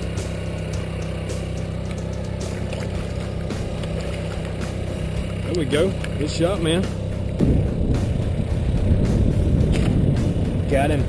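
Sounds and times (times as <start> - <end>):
boat motor humming: 0.0 - 11.0
faint ticks: 0.6 - 3.0.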